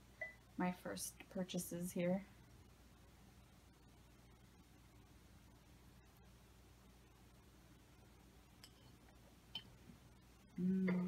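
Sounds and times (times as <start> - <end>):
glass clinking: 8.6 - 9.8.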